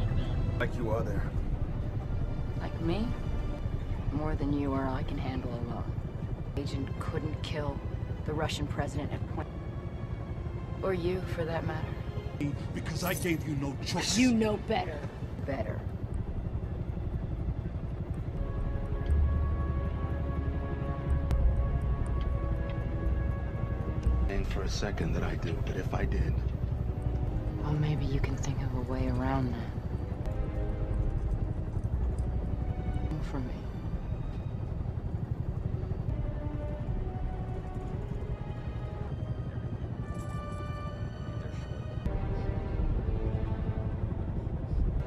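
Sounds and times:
helicopter engine and rotors rumbling: 0:00.0 - 0:45.0
quiet film score: 0:00.0 - 0:45.0.

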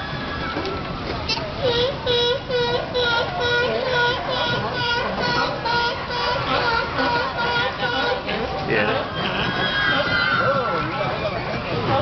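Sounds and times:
people chattering: 0:00.0 - 0:12.0
sea lions calling: 0:01.3 - 0:10.9.

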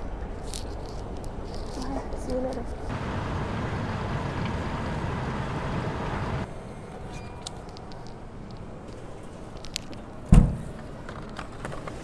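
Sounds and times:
escalator rumbling: 0:02.4 - 0:06.5.

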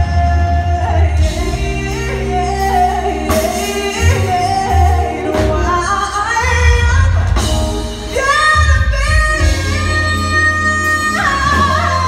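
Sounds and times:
live soul band: 0:00.0 - 0:12.0
woman singing: 0:00.0 - 0:12.0.

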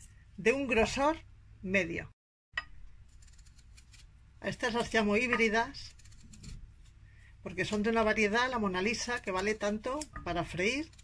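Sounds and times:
knife slicing potato: 0:03.0 - 0:11.0.

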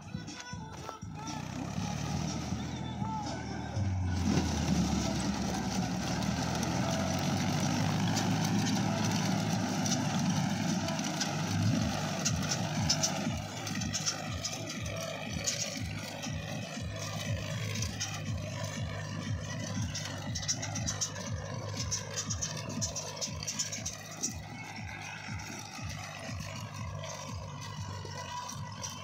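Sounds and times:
tractor engine running: 0:00.0 - 0:29.0.

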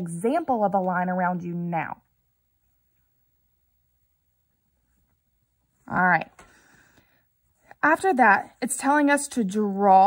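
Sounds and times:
woman speaking: 0:00.0 - 0:02.1, 0:05.8 - 0:06.4, 0:07.7 - 0:10.0.

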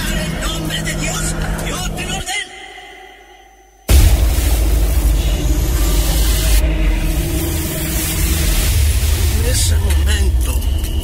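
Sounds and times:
fire rumble with rushing hiss: 0:03.9 - 0:11.0.

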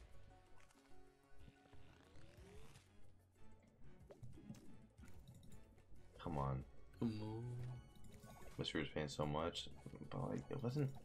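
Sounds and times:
slot game music: 0:00.0 - 0:11.0.

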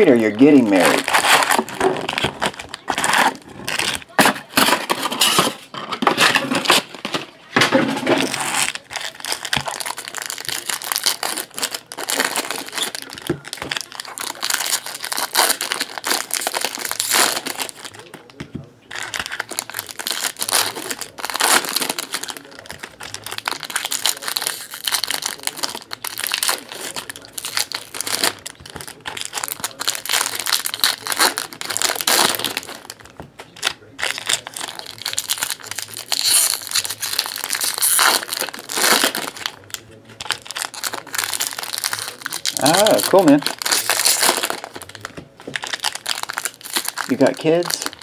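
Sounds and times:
foil wrappers crinkling: 0:00.0 - 0:48.0.

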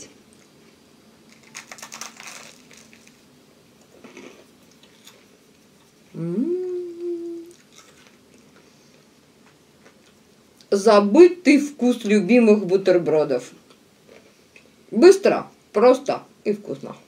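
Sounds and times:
crunching bites and chewing: 0:01.2 - 0:03.2, 0:03.8 - 0:06.0, 0:07.5 - 0:08.6
woman humming mmm: 0:06.1 - 0:07.6.

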